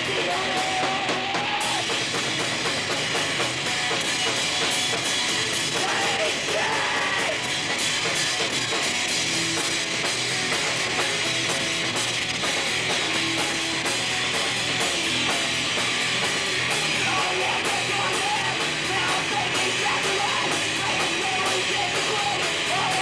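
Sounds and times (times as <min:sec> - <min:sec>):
drum kit beat: 0:00.0 - 0:23.0
electric guitar: 0:00.0 - 0:23.0.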